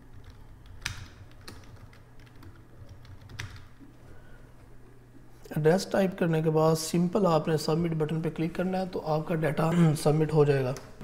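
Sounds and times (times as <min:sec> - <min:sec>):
computer keyboard typing: 0:00.0 - 0:03.8
faint low hum: 0:00.0 - 0:11.0.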